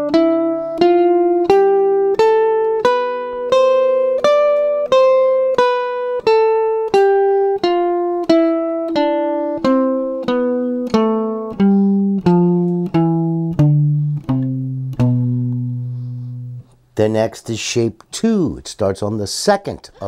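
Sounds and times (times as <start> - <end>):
guitar playing picked scale: 0.0 - 16.8.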